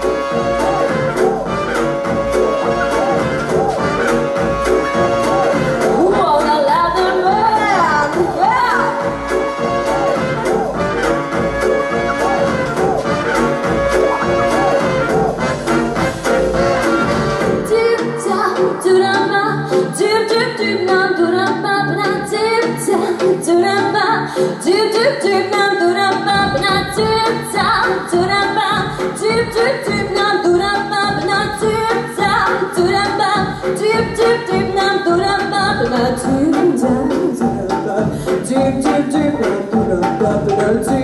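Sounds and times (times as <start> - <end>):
pop backing track: 0.0 - 41.0
woman singing: 5.2 - 9.2, 17.6 - 41.0.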